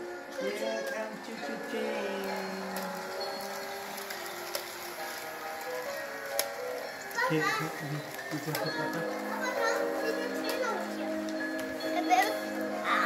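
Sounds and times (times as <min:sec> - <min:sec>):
toy train melody: 0:00.0 - 0:13.0
person speaking: 0:07.3 - 0:09.4.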